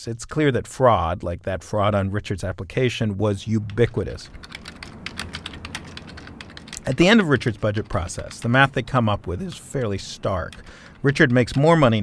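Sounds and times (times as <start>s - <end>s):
typing on computer keyboard: 3.6s - 12.0s.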